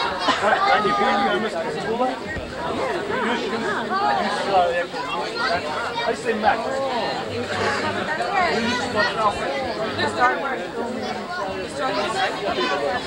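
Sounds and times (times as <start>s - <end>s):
people talking at once: 0.0s - 13.0s.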